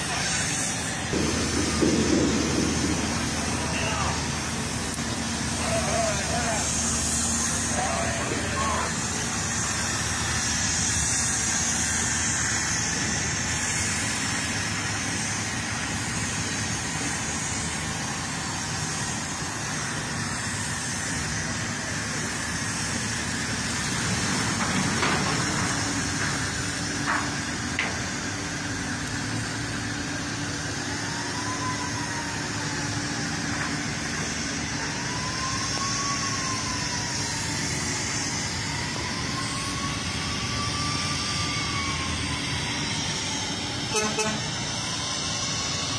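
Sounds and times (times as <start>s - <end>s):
rising and falling whine: 0.0s - 45.9s.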